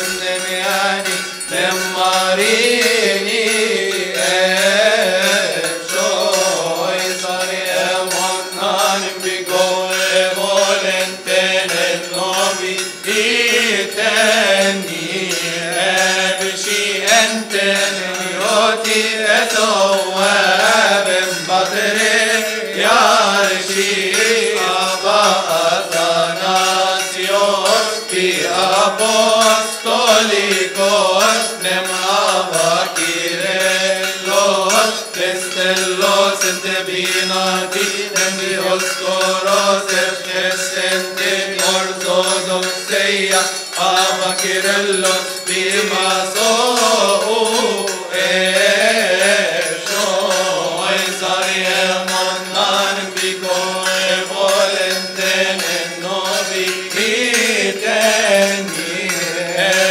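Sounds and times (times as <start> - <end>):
group chanting a hymn: 0.0 - 59.9.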